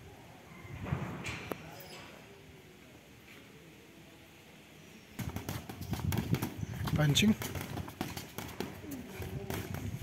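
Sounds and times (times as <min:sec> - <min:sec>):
boxing gloves striking: 0:07.4 - 0:09.8.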